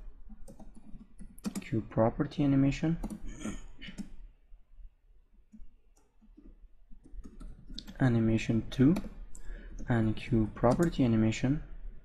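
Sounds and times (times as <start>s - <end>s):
keyboard keys typing: 0.1s - 1.8s, 2.8s - 4.2s, 5.4s - 11.1s.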